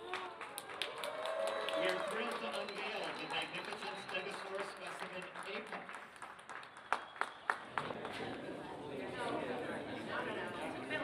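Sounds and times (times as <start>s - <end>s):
hand claps: 0.0s - 8.2s
crowd murmur in a large hall: 0.0s - 11.0s.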